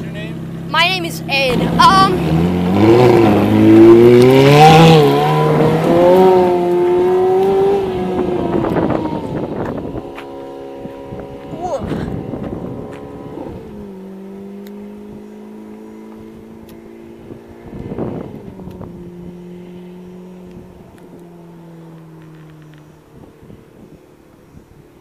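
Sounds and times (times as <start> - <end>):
sports car engine pulling away: 0.0 - 25.0.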